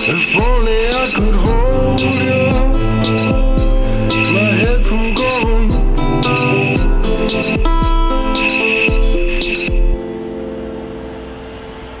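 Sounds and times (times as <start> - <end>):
held synth note: 1.2 - 11.2.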